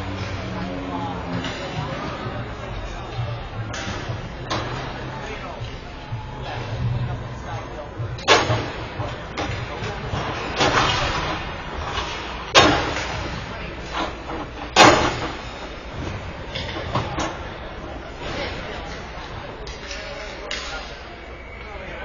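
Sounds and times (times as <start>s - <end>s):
loud sharp bangs: 12.4s - 13.5s.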